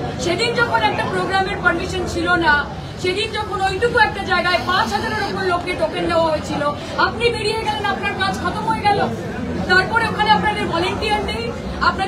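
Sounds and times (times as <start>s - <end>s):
woman talking forcefully: 0.2s - 9.1s.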